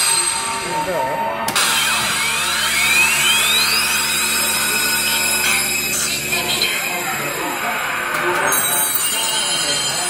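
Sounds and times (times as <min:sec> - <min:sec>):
din of a pachinko parlour: 0:00.0 - 0:10.0
rising electronic whine: 0:01.6 - 0:08.4.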